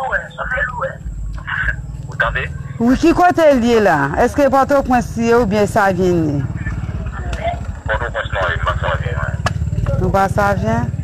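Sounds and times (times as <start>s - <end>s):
motor rumbling: 0.0s - 11.0s.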